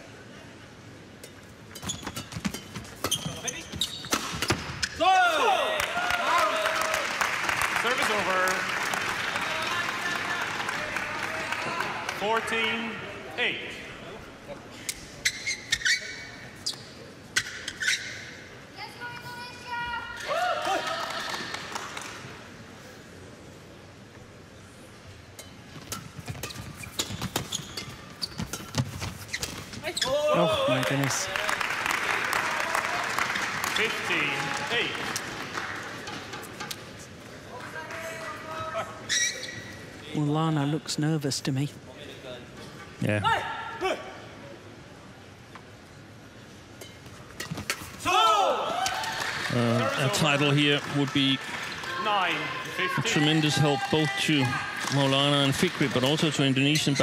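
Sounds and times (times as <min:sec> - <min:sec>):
shoes squeaking on court: 0:01.7 - 0:05.0, 0:15.2 - 0:18.4, 0:25.4 - 0:30.9, 0:39.0 - 0:40.0
crowd cheering: 0:05.2 - 0:12.4, 0:30.2 - 0:36.1, 0:48.0 - 0:56.7.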